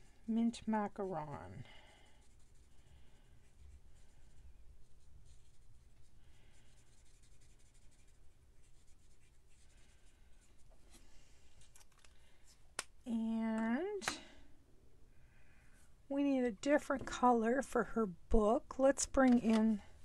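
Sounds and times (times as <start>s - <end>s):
marker scratching on cardstock: 3.4s - 9.7s.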